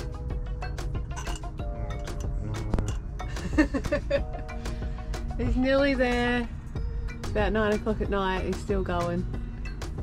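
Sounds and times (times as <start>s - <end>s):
background music: 0.0s - 10.0s
metallic clinking of winch parts: 0.8s - 3.1s.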